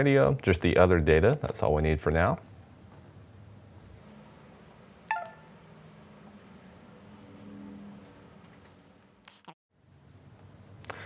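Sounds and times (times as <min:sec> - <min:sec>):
bright electronic chime: 0:05.1 - 0:05.5.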